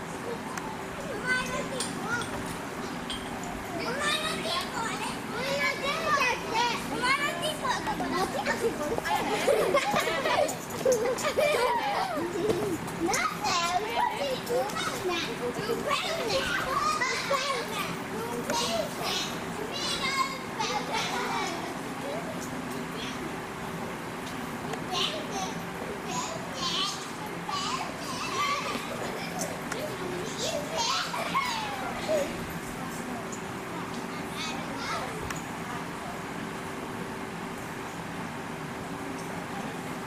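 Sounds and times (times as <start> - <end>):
children and adults chattering: 0.0 - 40.0.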